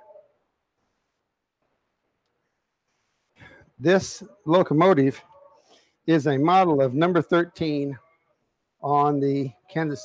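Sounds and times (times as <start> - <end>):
person speaking: 3.8 - 5.5, 6.1 - 8.0, 8.8 - 10.0.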